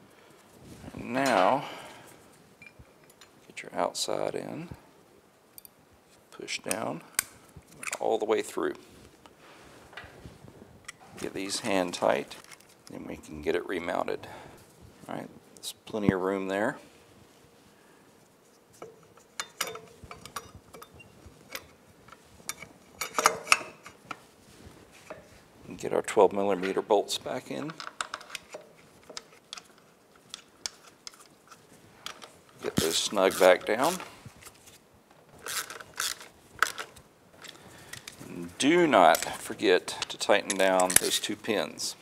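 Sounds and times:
light metallic clicks and clinks: 0:18.8 - 0:24.0
ratchet clicking: 0:35.4 - 0:36.8.

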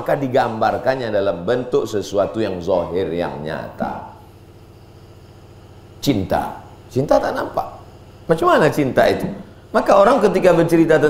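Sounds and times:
motor humming: 0:00.0 - 0:11.0.

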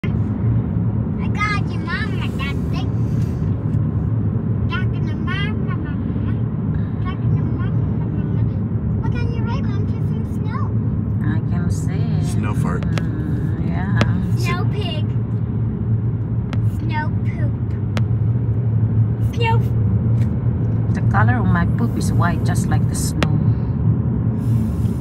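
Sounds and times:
road and engine rumble in car: 0:00.0 - 0:25.0.

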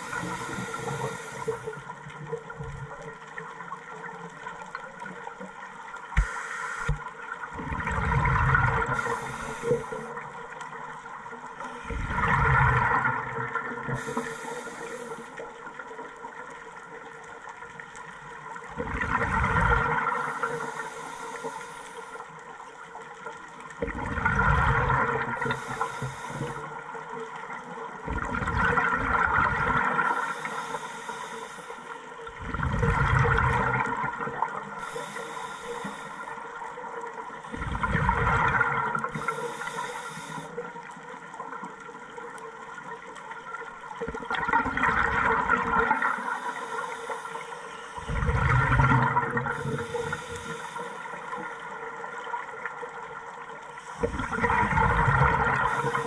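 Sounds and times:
regulator inhale hiss: 0:00.0 - 0:01.9, 0:06.2 - 0:07.1, 0:08.8 - 0:10.2, 0:13.9 - 0:15.4, 0:20.1 - 0:22.5, 0:25.4 - 0:26.8, 0:30.0 - 0:32.1, 0:34.7 - 0:36.6, 0:39.1 - 0:40.7, 0:45.9 - 0:48.2, 0:49.5 - 0:51.7, 0:55.6 - 0:56.0
faint steady hum: 0:00.0 - 0:23.8, 0:24.4 - 0:44.1, 0:44.8 - 0:56.0
exhaled bubbles underwater: 0:00.0 - 0:56.0.

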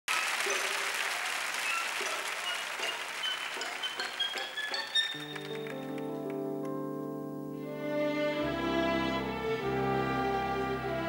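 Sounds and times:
audience applause: 0:00.1 - 0:06.5
orchestral string chord: 0:03.6 - 0:11.0.

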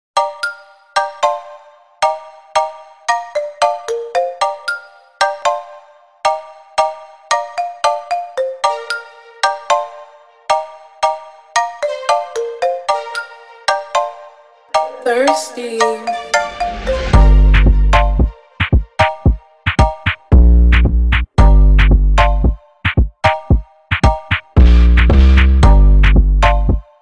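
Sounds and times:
melody of short struck notes: 0:14.7 - 0:18.4, 0:19.0 - 0:26.8.

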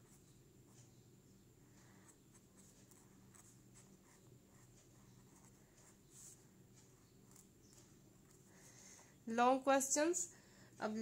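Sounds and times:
marker scratching on paper: 0:00.0 - 0:01.0, 0:01.6 - 0:09.0.

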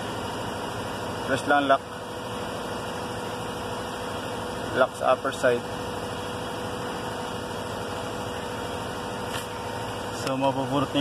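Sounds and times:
mechanical hum: 0:00.0 - 0:11.0.

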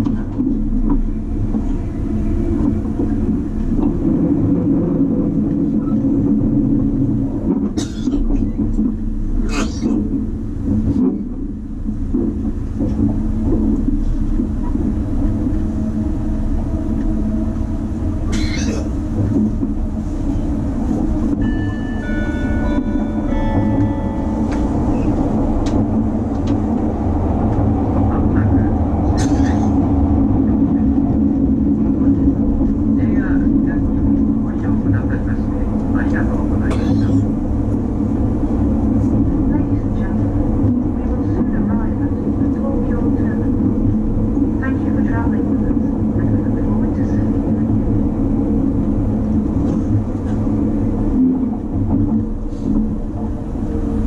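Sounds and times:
train wheels rumbling on rail: 0:00.0 - 0:54.0.

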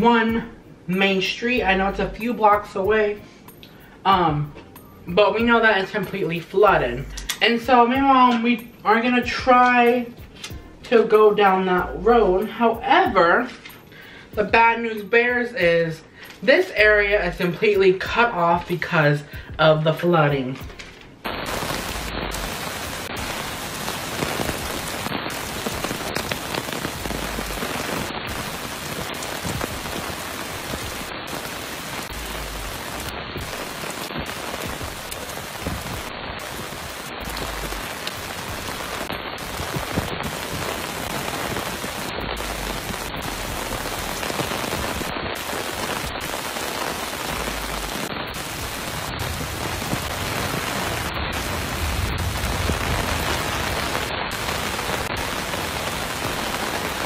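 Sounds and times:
floodwater running: 0:21.3 - 0:57.0
heavy rain on a street: 0:21.3 - 0:57.0.

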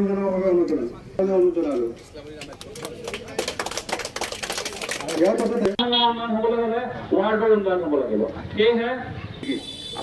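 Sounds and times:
crowd clapping: 0:02.3 - 0:05.8
man calling over a microphone: 0:05.2 - 0:10.0.

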